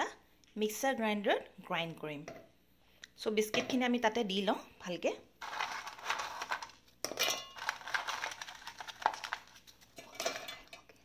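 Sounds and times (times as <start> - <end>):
biscuits clinking in metal jar: 5.4 - 11.0.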